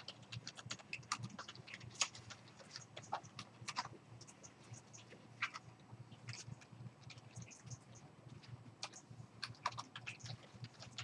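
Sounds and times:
computer keyboard typing: 0.0 - 5.6, 6.2 - 11.0.

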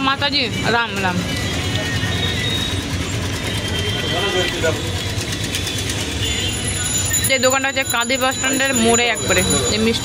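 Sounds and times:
motorbike engines passing: 0.0 - 10.0.

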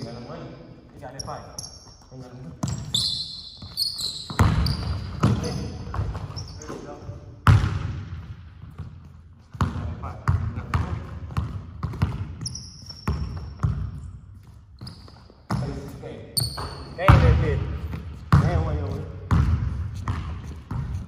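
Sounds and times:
sneakers squeaking on floor: 0.0 - 21.0
basketball bouncing on hardwood floor: 2.6 - 6.8, 7.4 - 14.2, 14.8 - 21.0.

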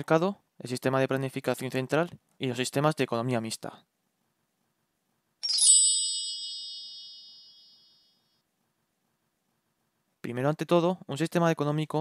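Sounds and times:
bright ding: 5.4 - 8.2.

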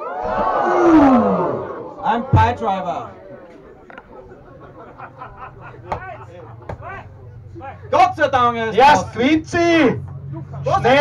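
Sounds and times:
long falling cry: 0.0 - 2.0
voices shouting: 0.0 - 7.3.

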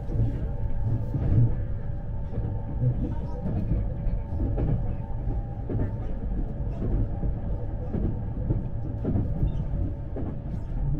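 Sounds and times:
train rumbling at speed: 0.0 - 10.9.

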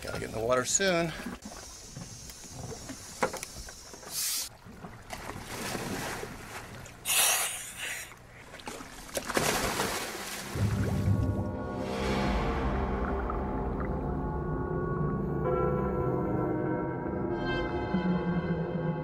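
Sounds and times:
boat deck background noise: 0.0 - 9.4
water splashing: 0.0 - 14.2
music: 10.6 - 19.0.

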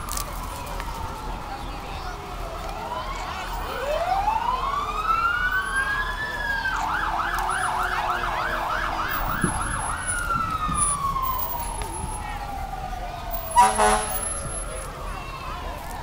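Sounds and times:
fire truck siren wailing and yelping: 0.0 - 16.0.

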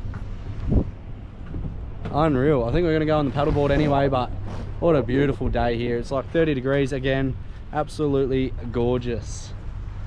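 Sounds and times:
wind buffeting microphone: 0.0 - 9.0.

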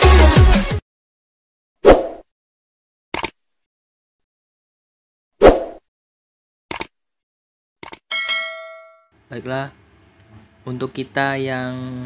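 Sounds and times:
notification bell ding: 8.1 - 9.1.

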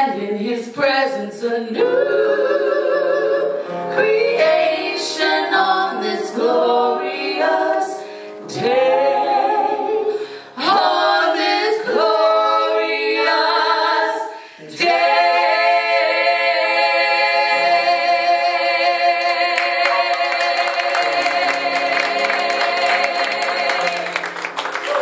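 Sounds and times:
women singing gospel: 0.0 - 24.2.

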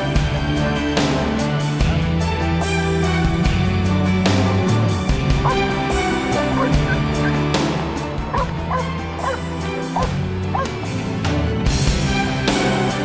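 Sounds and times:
background music: 0.0 - 13.0
dog barking and yipping: 5.4 - 5.7, 6.4 - 7.4, 8.3 - 9.4, 10.0 - 10.8.

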